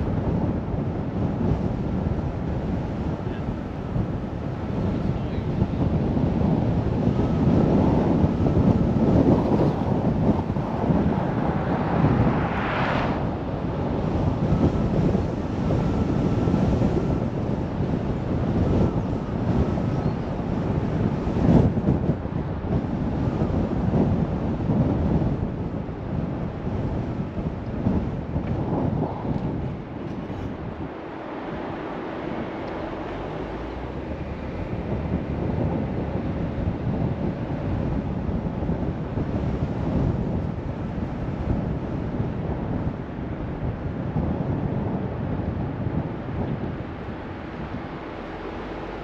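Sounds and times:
car driving rumble: 0.0s - 49.0s
wind buffeting microphone: 0.0s - 49.0s
rising whoosh: 10.4s - 14.0s.

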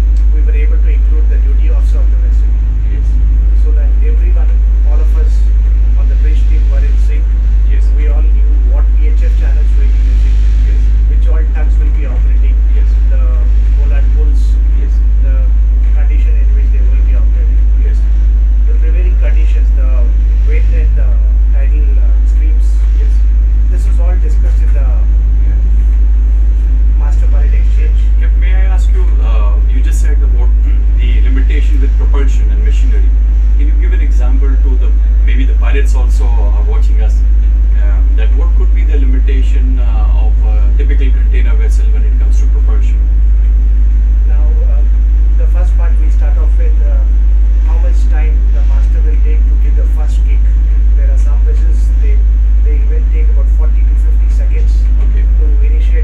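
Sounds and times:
boat engine rumbling: 0.0s - 56.0s
men talking: 0.0s - 56.0s.

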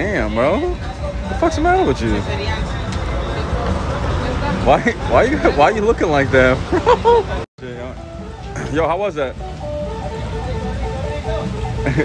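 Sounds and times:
street traffic rumble: 0.0s - 12.0s
man talking: 4.6s - 6.7s.

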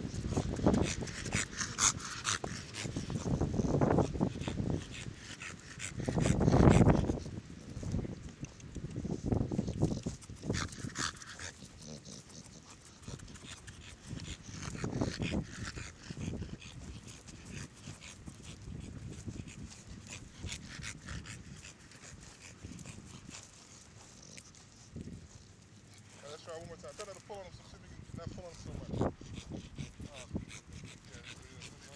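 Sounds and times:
dog breathing hard and snuffling: 0.0s - 31.9s.

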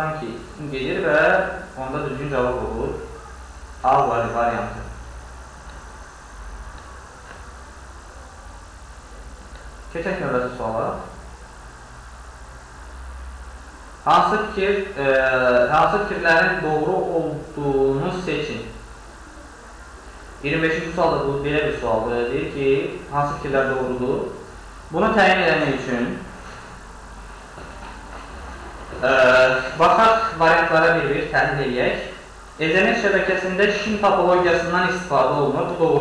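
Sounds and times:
faint hiss: 0.0s - 36.0s.

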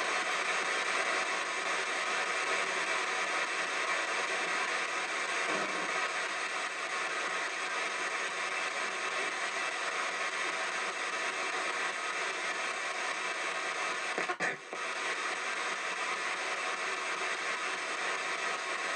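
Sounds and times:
radio static hiss: 0.0s - 18.9s.

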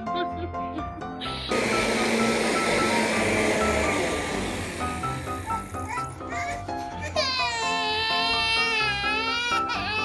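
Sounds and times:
background music: 0.0s - 10.0s
vacuum cleaner running: 1.2s - 6.3s.

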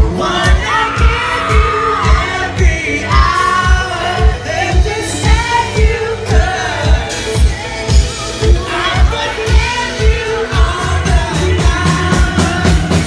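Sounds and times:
lead singer: 0.0s - 13.0s
live band playing pop music: 0.0s - 13.0s.

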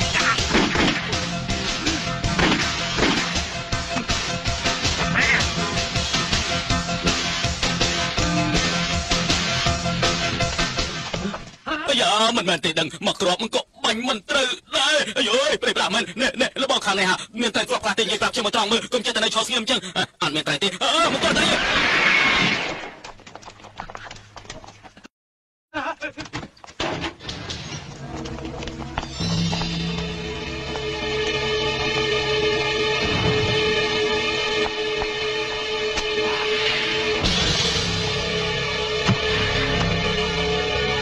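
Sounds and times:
film soundtrack music: 0.0s - 11.5s, 27.5s - 41.0s.

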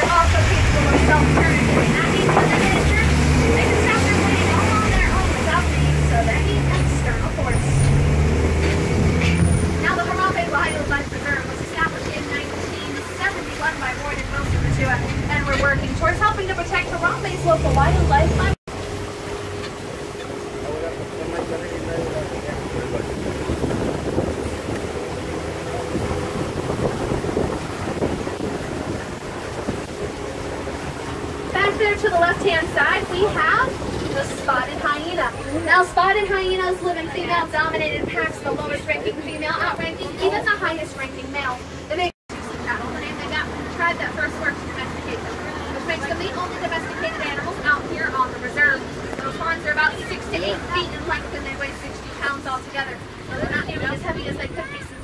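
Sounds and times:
wind buffeting microphone: 0.0s - 18.6s, 19.4s - 41.0s, 43.3s - 55.0s
road noise: 0.0s - 55.0s
truck engine droning: 0.0s - 55.0s.

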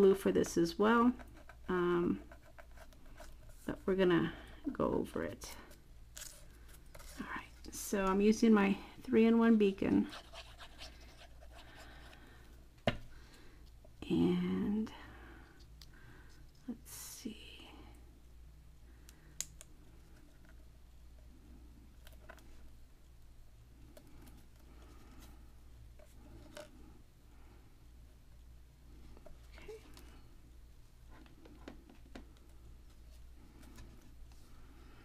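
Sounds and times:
faint handling sounds: 0.0s - 14.0s, 19.0s - 35.0s
low steady hum: 0.0s - 35.0s.

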